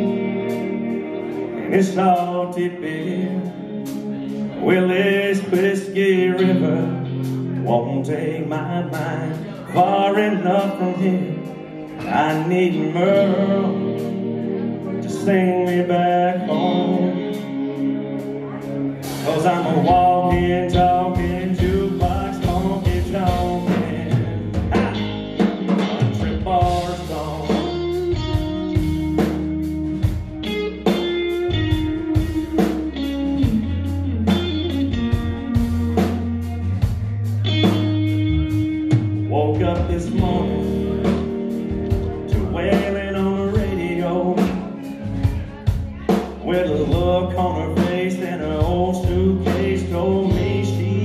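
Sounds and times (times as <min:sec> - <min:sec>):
bass line: 0:00.0 - 0:51.0
electric guitars: 0:00.0 - 0:51.0
drum kit beat: 0:08.9 - 0:51.0.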